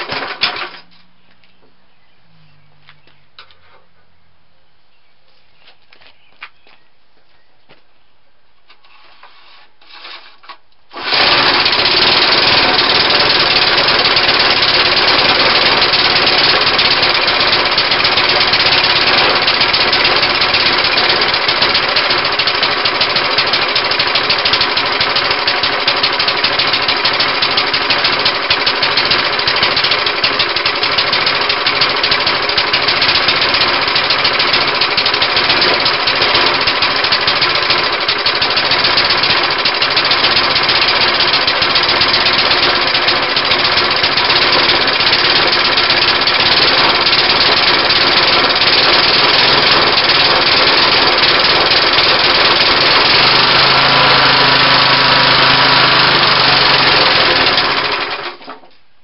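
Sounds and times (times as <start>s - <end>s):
lawnmower engine running: 0.0s - 1.4s, 10.9s - 58.6s.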